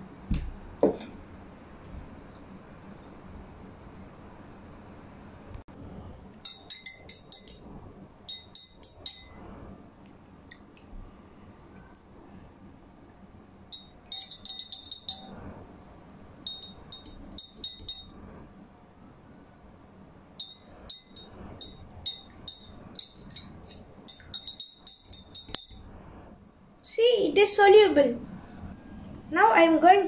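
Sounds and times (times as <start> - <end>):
metal spoon clinking against glass: 6.4 - 9.4, 13.7 - 15.4, 16.4 - 18.2, 20.4 - 25.9.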